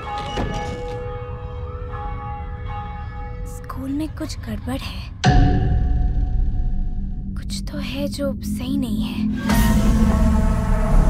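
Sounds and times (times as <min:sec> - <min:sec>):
large bell ringing: 0:00.0 - 0:05.6.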